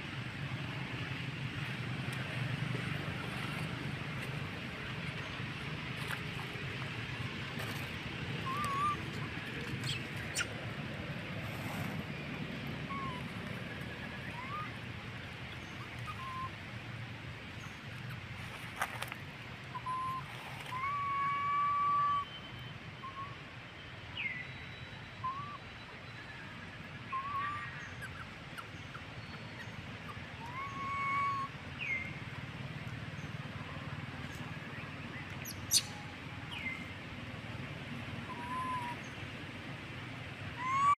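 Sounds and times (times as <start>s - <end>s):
outdoor background hiss: 0.0s - 40.9s
high chirping animal calls: 8.4s - 10.6s, 35.4s - 36.8s, 40.6s - 40.9s.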